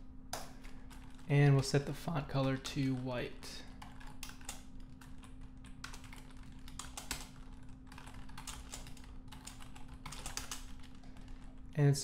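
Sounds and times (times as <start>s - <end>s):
steady low hum: 0.0s - 12.0s
computer keyboard typing: 0.4s - 1.8s, 2.4s - 11.6s.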